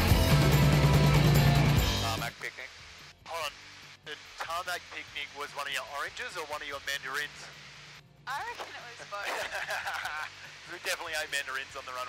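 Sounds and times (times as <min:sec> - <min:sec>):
voices over headset intercom: 0:02.1 - 0:07.7, 0:08.3 - 0:12.0.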